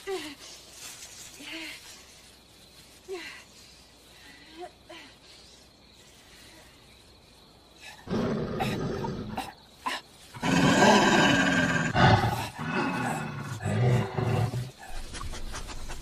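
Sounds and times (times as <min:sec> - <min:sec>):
large animal growling and snarling: 0:10.4 - 0:14.8.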